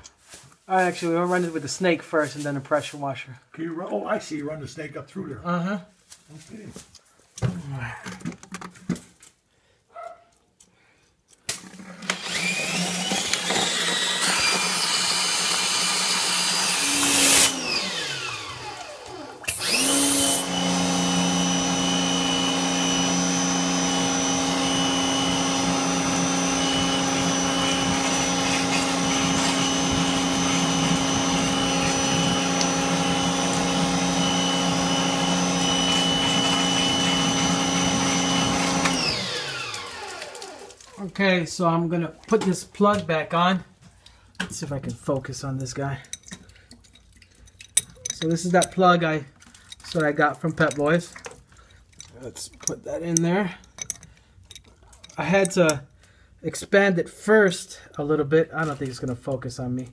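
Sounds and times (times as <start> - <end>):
drain-clearing machine motor: 12.1 - 40.9.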